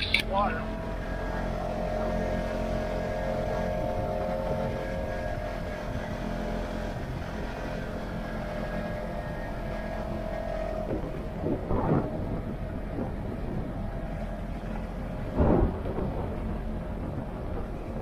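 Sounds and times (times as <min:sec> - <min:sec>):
engine and drivetrain drone: 0:00.0 - 0:18.0.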